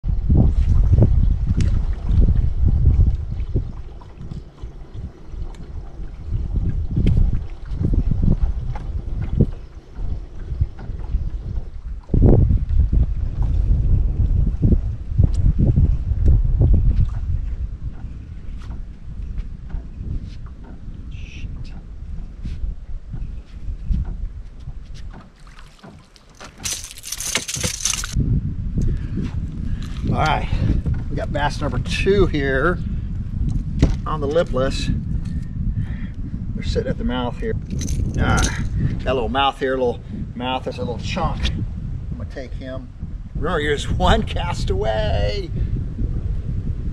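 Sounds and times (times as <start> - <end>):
wind buffeting microphone: 0.0 - 46.9
clicks and knocks: 25.1 - 28.2.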